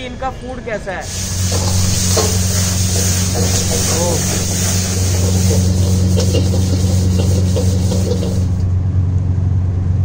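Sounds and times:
gas wok burner roaring: 1.0s - 9.0s.

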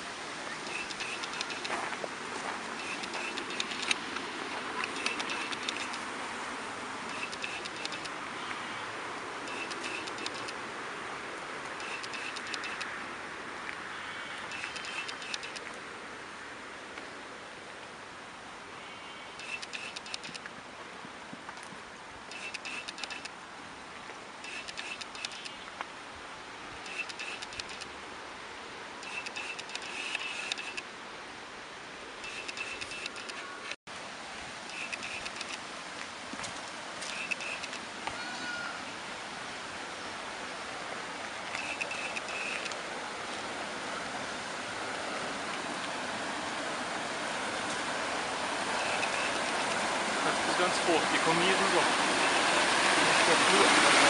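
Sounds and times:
small birds chirping: 14.1s - 15.5s.

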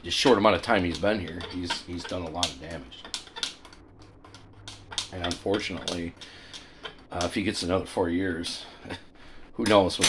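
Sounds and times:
faint low room hum: 0.0s - 10.0s.

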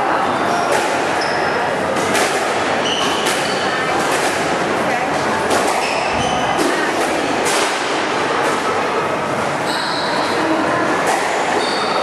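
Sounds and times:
din of busy indoor squash hall: 0.0s - 12.0s.

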